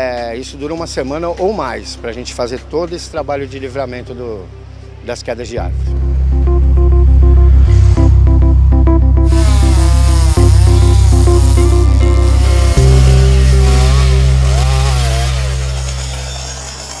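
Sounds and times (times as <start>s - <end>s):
background music with bass: 0.0s - 17.0s
chainsaw revving cutting wood: 9.3s - 17.0s.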